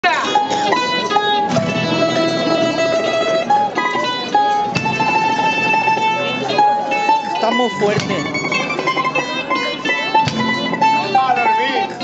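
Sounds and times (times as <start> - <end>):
acoustic guitars strumming: 0.0 - 12.0
mandolin melody: 0.0 - 12.0.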